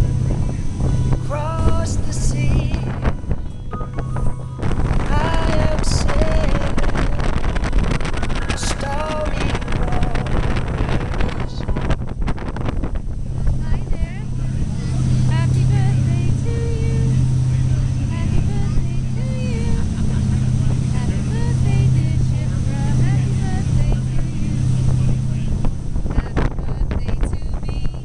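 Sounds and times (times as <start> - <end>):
faint voices: 0.0 - 12.2, 13.0 - 28.0
ferry engines droning: 0.0 - 28.0
wind buffeting microphone: 0.0 - 28.0.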